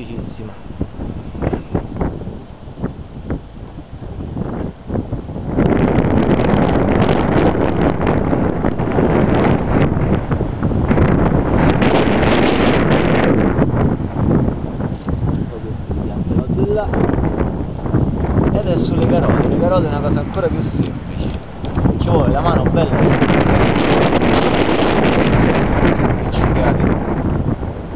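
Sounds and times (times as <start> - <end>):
wind buffeting microphone: 0.0 - 27.9.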